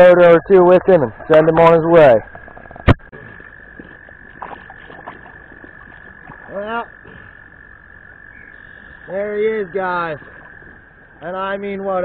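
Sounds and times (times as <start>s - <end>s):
creek water hiss: 3.1s - 12.0s.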